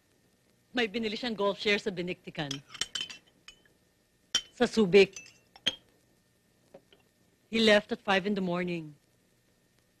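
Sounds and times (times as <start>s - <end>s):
cutlery clinking on china: 2.5s - 3.7s, 4.4s - 5.8s.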